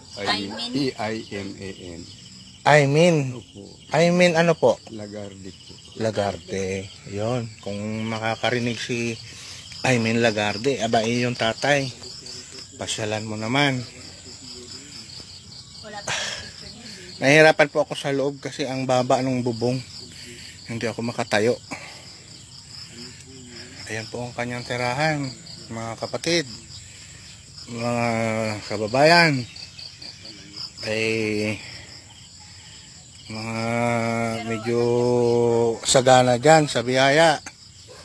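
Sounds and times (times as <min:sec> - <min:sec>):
insects chirping in pulses: 0:00.0 - 0:38.0.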